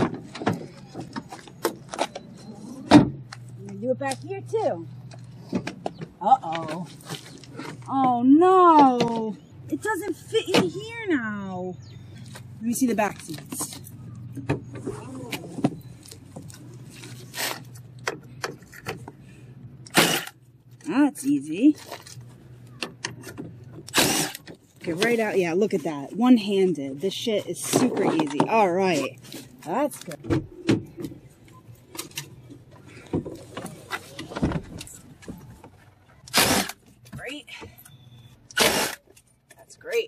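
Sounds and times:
steady low hum: 0.0 - 40.0.

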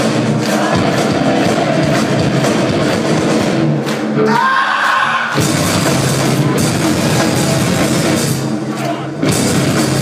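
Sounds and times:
drum hits: 0.0 - 4.2, 5.3 - 10.0.

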